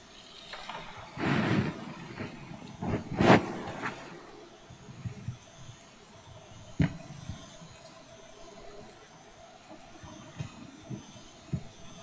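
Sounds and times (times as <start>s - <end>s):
people sitting down rustling: 0.4s - 5.3s.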